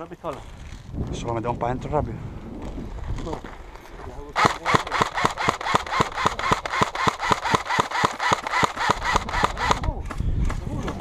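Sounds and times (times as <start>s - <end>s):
rapid sharp clicks: 4.4s - 11.0s.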